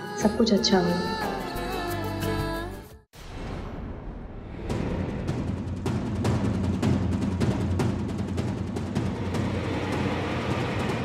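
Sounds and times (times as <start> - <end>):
low rumbling score swell: 3.2 - 6.5, 8.9 - 11.0.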